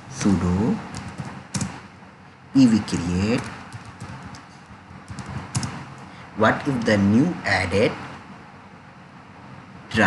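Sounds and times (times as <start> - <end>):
computer keyboard typing: 0.9 - 1.8, 3.2 - 5.8.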